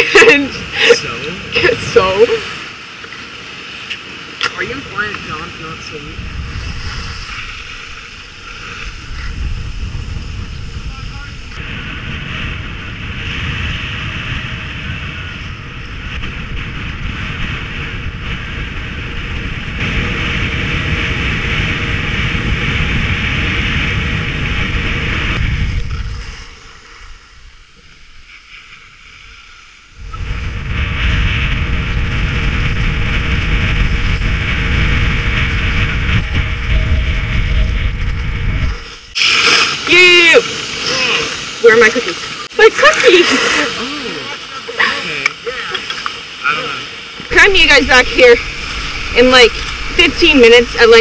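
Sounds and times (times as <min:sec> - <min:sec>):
wind buffeting microphone: 0:00.0 - 0:51.0
skis hissing on snow: 0:06.0 - 0:11.6, 0:38.8 - 0:51.0.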